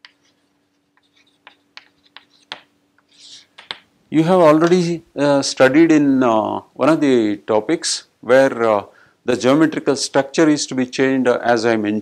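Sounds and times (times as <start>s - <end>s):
chalk tapping on chalkboard: 0.0s - 3.9s
faint steady hum: 0.0s - 12.0s.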